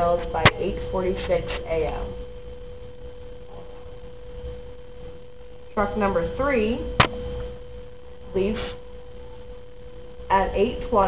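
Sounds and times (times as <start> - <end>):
low background rumble: 0.0 - 11.0
steady single-pitched hum: 0.0 - 11.0.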